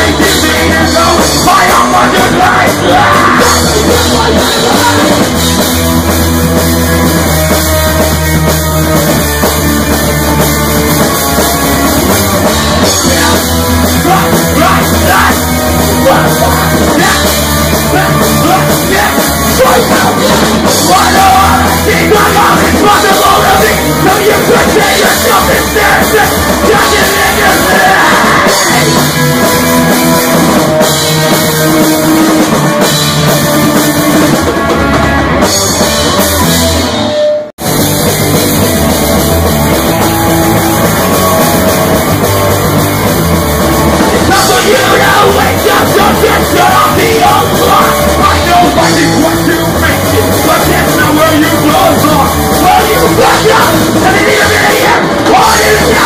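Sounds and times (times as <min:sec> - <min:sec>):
shouted vocals: 0:00.0 - 0:05.2, 0:12.8 - 0:29.1, 0:44.2 - 0:56.0
distorted electric guitar: 0:00.0 - 0:56.0
drums pounding: 0:00.0 - 0:56.0
person yelling over music: 0:00.4 - 0:05.2, 0:14.0 - 0:29.0, 0:44.3 - 0:56.0.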